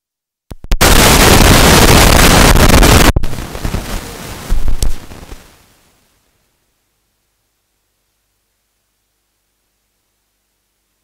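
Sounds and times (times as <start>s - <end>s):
loud distorted noise: 0.5s - 5.5s
faint hiss: 0.8s - 11.0s.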